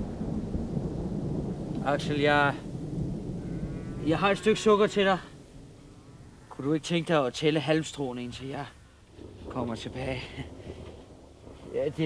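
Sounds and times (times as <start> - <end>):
man's voice: 4.0 - 5.2.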